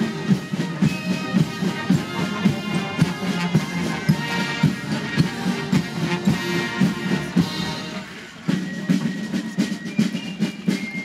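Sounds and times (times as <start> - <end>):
brass chords: 0.0 - 8.4
military band drum beat: 0.0 - 11.0.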